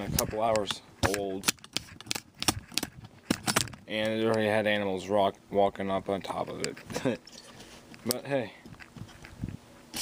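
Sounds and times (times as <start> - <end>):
sharp clicks and taps: 0.0 - 4.5.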